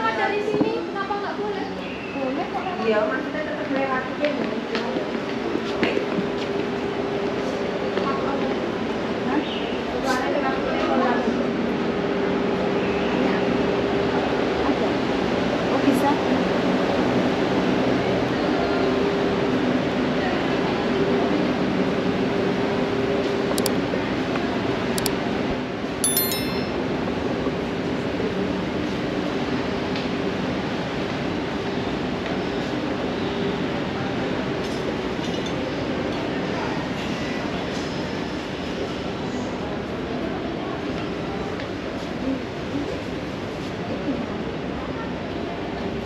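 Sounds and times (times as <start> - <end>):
light clinks of glass: 26.0 - 26.8.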